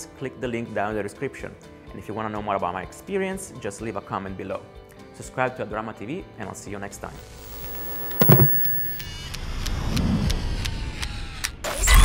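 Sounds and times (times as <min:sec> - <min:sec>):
mechanical clicks: 0:07.2 - 0:09.0
thin steady tone: 0:07.2 - 0:09.0.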